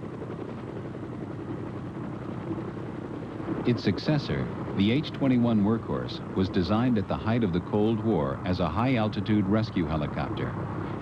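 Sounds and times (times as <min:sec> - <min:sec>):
helicopter hovering: 0:00.0 - 0:11.0.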